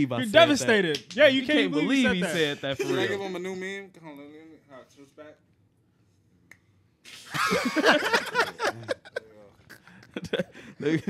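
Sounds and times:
man's voice: 0:00.0 - 0:04.9.

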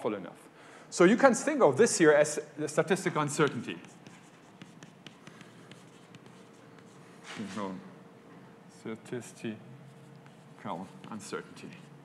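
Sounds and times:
chalk tapping and scratching on blackboard: 0:03.2 - 0:07.6, 0:09.9 - 0:12.0.

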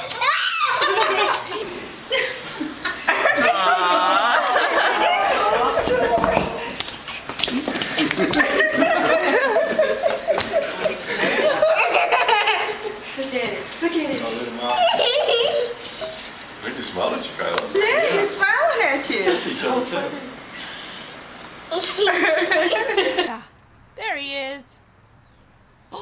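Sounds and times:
people laughing: 0:00.5 - 0:06.8, 0:07.4 - 0:13.1, 0:14.6 - 0:16.3, 0:21.9 - 0:23.4.

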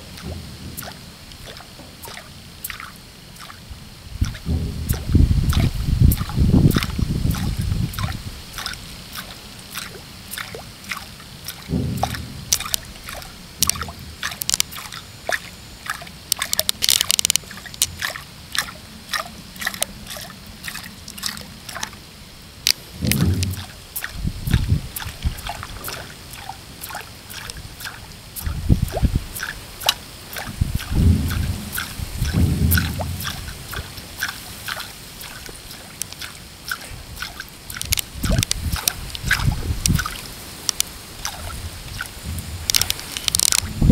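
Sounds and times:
low thumps: 0:00.0 - 0:02.1, 0:03.7 - 0:08.0, 0:11.7 - 0:14.8, 0:22.7 - 0:26.0, 0:30.4 - 0:34.4, 0:42.2 - 0:43.9
lure splashing on water: 0:00.0 - 0:43.9
sharp clicks: 0:11.6 - 0:14.9, 0:16.3 - 0:18.1, 0:36.0 - 0:36.8, 0:37.7 - 0:40.9, 0:42.6 - 0:43.7.

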